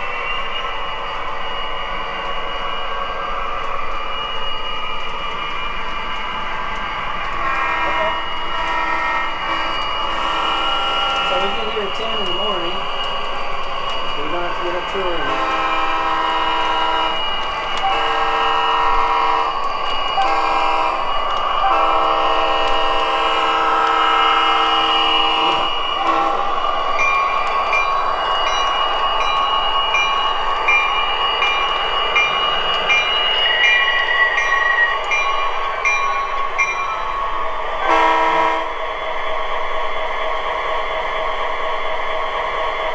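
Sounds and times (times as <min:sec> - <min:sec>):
model train running on track: 0:00.0 - 0:42.9
locomotive air horn blasts: 0:07.4 - 0:11.2, 0:15.2 - 0:17.2, 0:17.9 - 0:19.5, 0:20.2 - 0:21.0, 0:21.7 - 0:26.4, 0:37.8 - 0:38.7
locomotive bell ringing: 0:09.6 - 0:13.2, 0:13.9 - 0:38.4.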